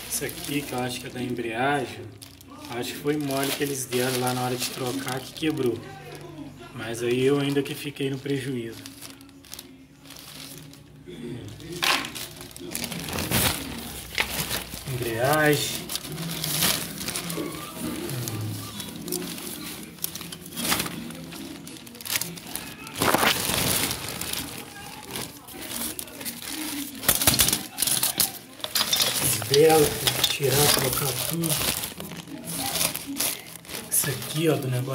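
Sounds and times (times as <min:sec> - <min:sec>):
plastic bags crinkling: 0:00.0 - 0:34.9.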